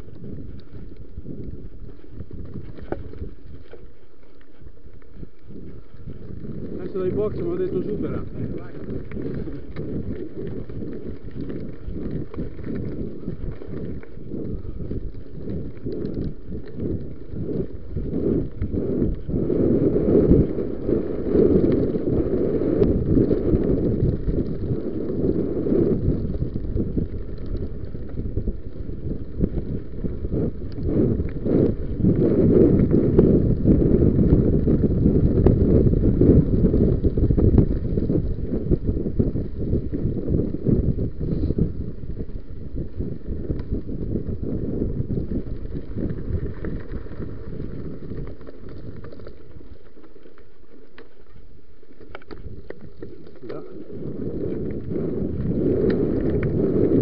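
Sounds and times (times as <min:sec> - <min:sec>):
bike rattling over bumps: 0:00.0 - 0:57.0
wind buffeting microphone: 0:00.0 - 0:57.0.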